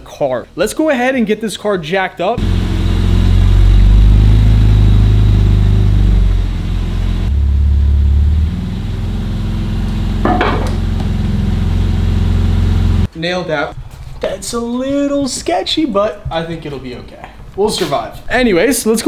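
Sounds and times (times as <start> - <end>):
car engine running at low revs: 2.4 - 13.1.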